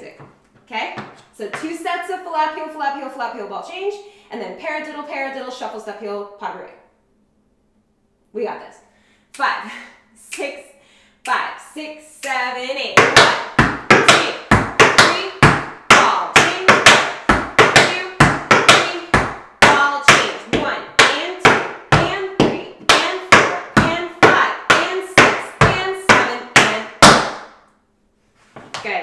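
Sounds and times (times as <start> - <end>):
tap shoes on wooden board: 1.0 - 1.7, 13.0 - 27.4.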